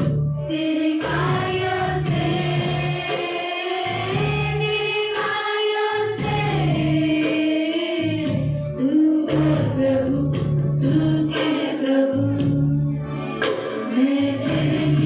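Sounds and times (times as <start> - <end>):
instrumental backing with bass: 0.0 - 15.0
steady percussive beat: 0.0 - 15.0
group singing worship song: 0.5 - 15.0.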